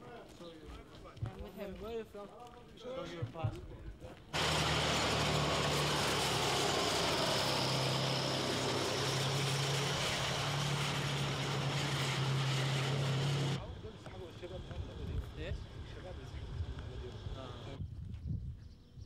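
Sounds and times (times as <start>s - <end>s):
heavy vehicle engine droning: 4.4s - 17.8s.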